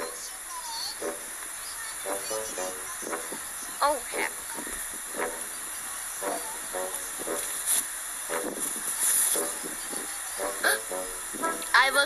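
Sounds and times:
steady hiss: 0:00.0 - 0:12.0
breathy bursts of hiss: 0:01.0 - 0:11.7
faint voice-like sounds: 0:08.7 - 0:12.0.

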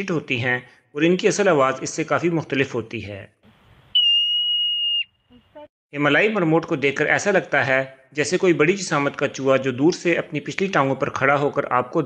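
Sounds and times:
marmot alarm whistle: 0:03.9 - 0:05.7.

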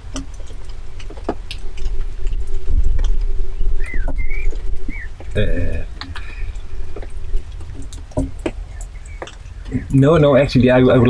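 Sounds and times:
faint steady hum: 0:00.0 - 0:11.0
wind buffeting microphone: 0:00.0 - 0:11.0.

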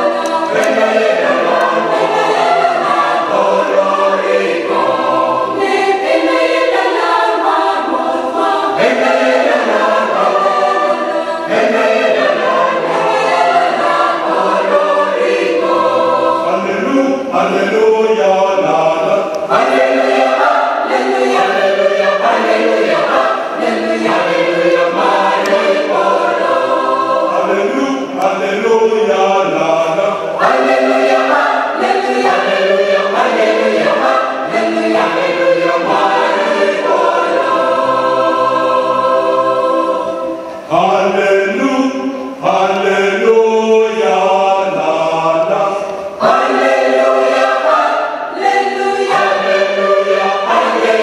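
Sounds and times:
choir singing a carol in harmony: 0:00.0 - 0:51.0.

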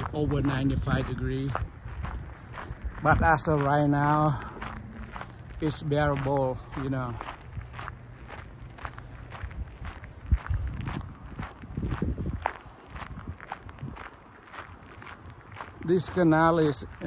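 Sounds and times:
footsteps on gravel: 0:00.0 - 0:17.0
wind rumble on microphone: 0:00.0 - 0:17.0.

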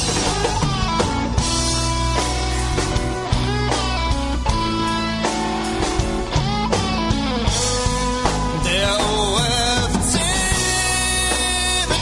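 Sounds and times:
instrumental rock music: 0:00.0 - 0:12.0.

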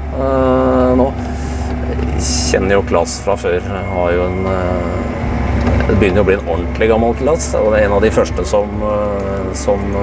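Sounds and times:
tractor diesel engine droning: 0:00.0 - 0:10.0.

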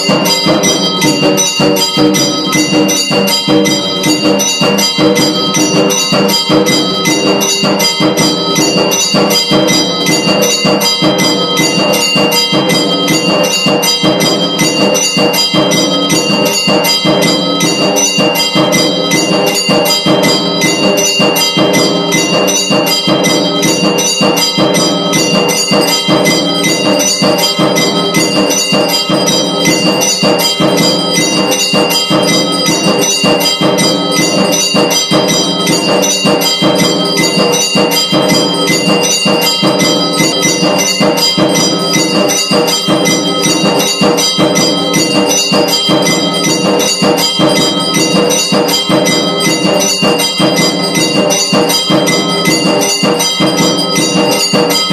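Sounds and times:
bells ringing rapidly: 0:00.0 - 0:54.9.

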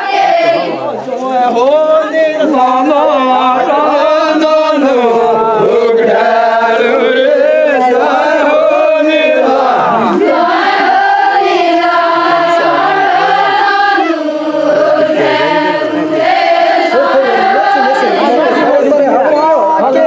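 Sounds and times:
group singing folk song: 0:00.0 - 0:20.0.

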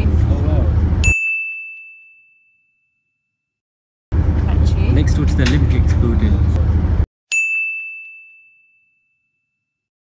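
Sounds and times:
bell-like ding: 0:01.0 - 0:03.6, 0:07.3 - 0:09.9.

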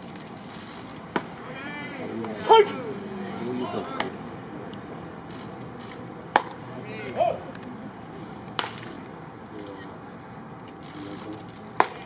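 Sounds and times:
baseball popping into leather mitt: 0:06.3 - 0:06.6, 0:08.5 - 0:09.0, 0:11.8 - 0:12.0.

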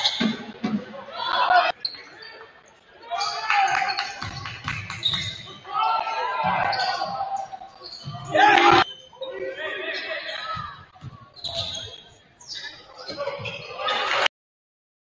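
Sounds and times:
voices echoing in a hall: 0:00.0 - 0:14.3.

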